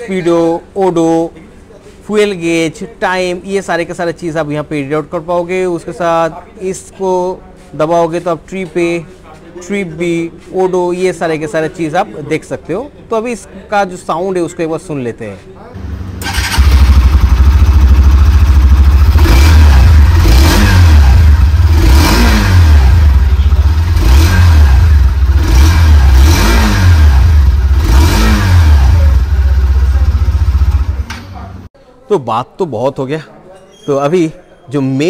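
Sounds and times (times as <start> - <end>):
motorcycle engine revving: 15.8 - 31.1.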